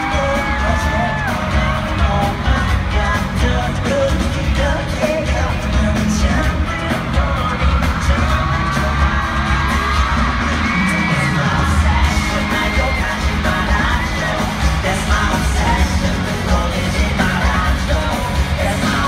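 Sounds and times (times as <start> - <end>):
crowd screaming: 0.0 - 2.6, 7.2 - 19.0
heavy bass beat: 0.0 - 19.0
person singing: 0.0 - 19.0
pop song over arena sound system: 0.0 - 19.0.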